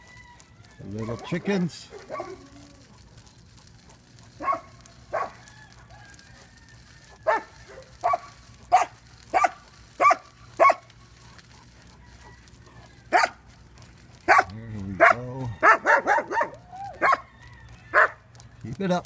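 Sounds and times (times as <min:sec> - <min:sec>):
dogs barking: 0:01.0 - 0:05.8, 0:07.1 - 0:17.3, 0:17.9 - 0:18.4.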